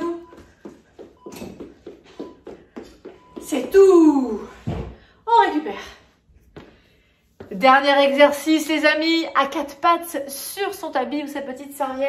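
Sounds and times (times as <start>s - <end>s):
sneakers stepping on wooden floor: 0.0s - 5.1s.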